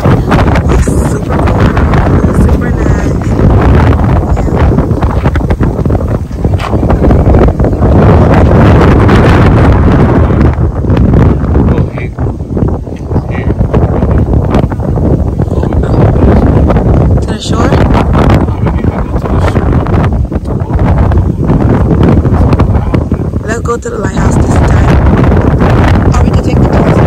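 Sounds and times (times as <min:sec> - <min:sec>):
wind on microphone: 0:00.0 - 0:27.0.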